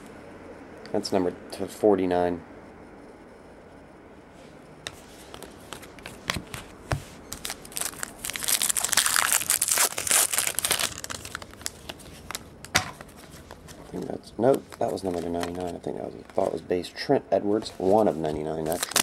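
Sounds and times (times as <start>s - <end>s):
foil wrapper crinkling: 7.3s - 16.6s, 17.6s - 19.0s.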